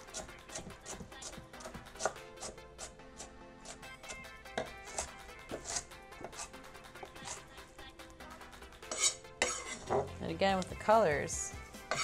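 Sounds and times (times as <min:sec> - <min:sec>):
background music: 0:00.0 - 0:12.0
knife slicing on cutting board: 0:00.1 - 0:07.4, 0:08.9 - 0:10.0.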